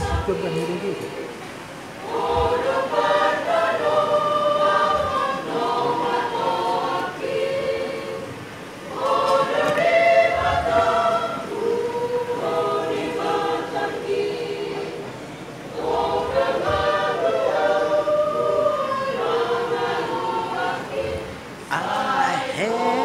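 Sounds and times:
church choir singing: 0.0 - 23.0.

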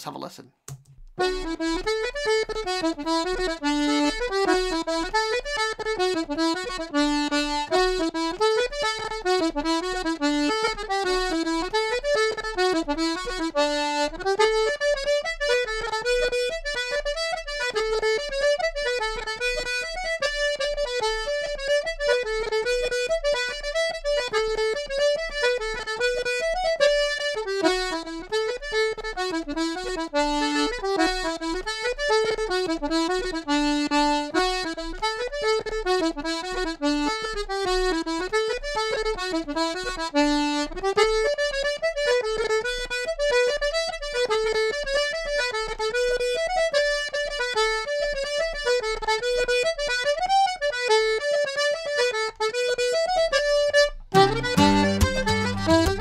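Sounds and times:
accordion playing fast tune: 1.2 - 56.0.

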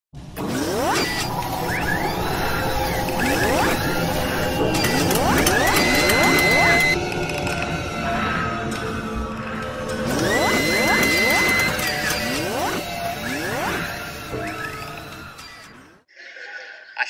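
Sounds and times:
machine whirs: 0.2 - 16.1
rising sweeps: 0.4 - 15.9
held high tone: 1.7 - 7.1.

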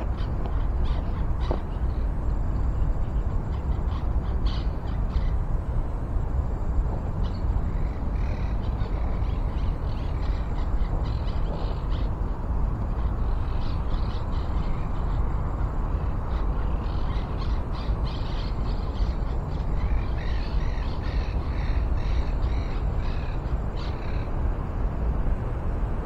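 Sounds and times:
steady low rumble: 0.0 - 26.0.

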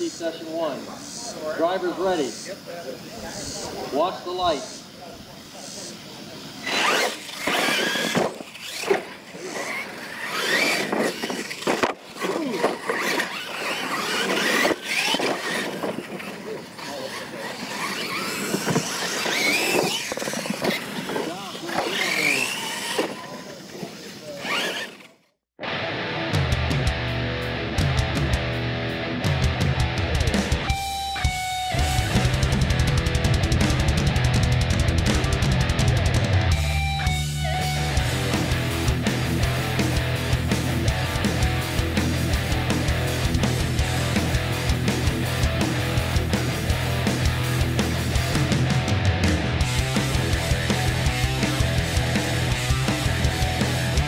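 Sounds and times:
rc truck motors whining: 0.0 - 25.3
rock music with electric guitar: 25.6 - 54.0.

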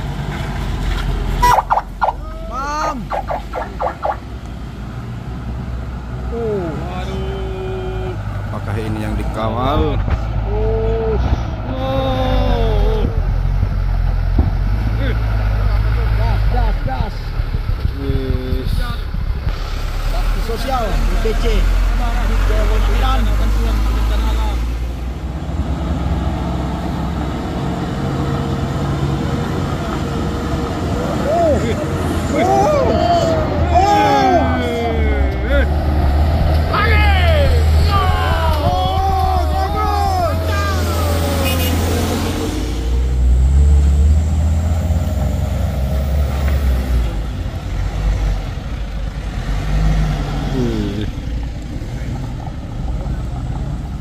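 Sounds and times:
diesel truck engines under load: 0.0 - 54.0
people calling out: 1.4 - 4.2, 6.3 - 8.3, 10.5 - 13.3, 31.1 - 35.7, 36.7 - 42.0.

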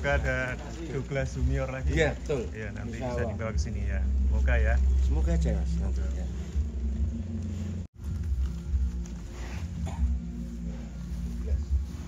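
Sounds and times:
steady low rumble: 1.0 - 8.9.

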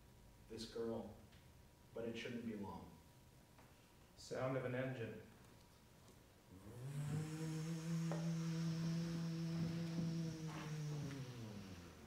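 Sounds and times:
steady low hum: 5.2 - 12.0.

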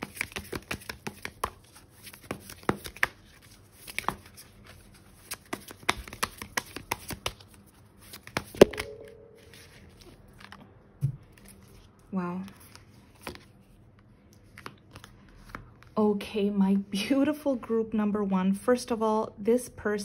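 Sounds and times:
cards being shuffled: 0.0 - 10.6, 12.5 - 13.8.

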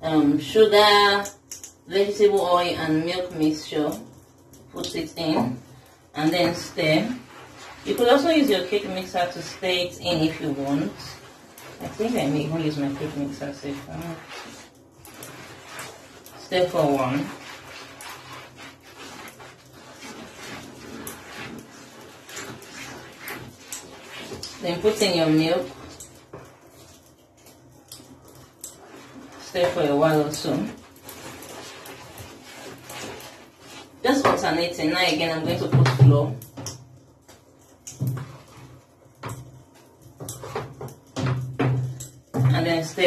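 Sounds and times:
spatula scraping bowl: 2.7 - 36.1.

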